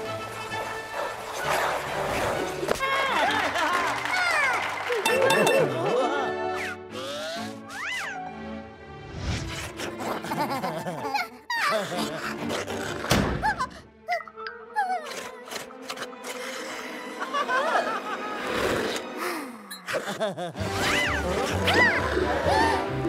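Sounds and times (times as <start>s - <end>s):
cartoon background music: 0.0s - 23.0s.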